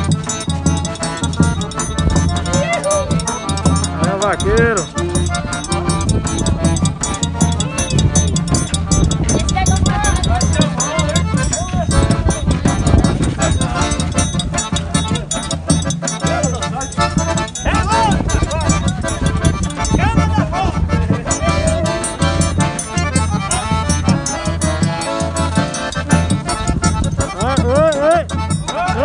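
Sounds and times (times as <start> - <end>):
accordion playing lively tune: 0.0 - 29.0.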